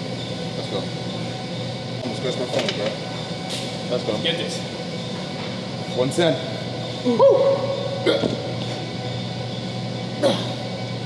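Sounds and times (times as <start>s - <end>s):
steady background hum: 0.0s - 11.0s
man coughing: 8.0s - 8.5s, 10.2s - 10.7s.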